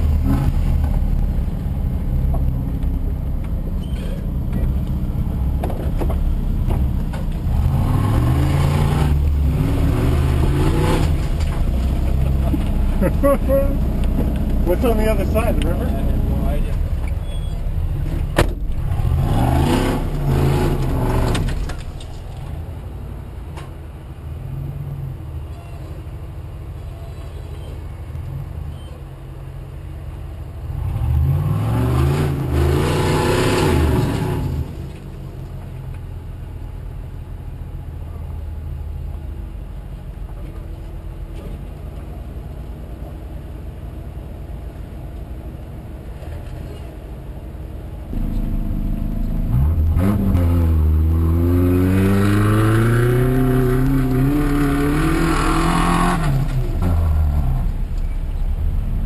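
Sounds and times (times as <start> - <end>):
off-road engines revving hard: 0.0 - 1.2, 7.3 - 21.8, 30.6 - 34.9, 48.1 - 59.0
engine idling: 46.2 - 50.1.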